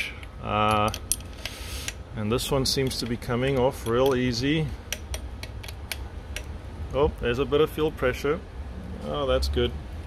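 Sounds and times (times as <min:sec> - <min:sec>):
wrench clicking on metal fitting: 0:00.1 - 0:02.0, 0:02.7 - 0:06.5.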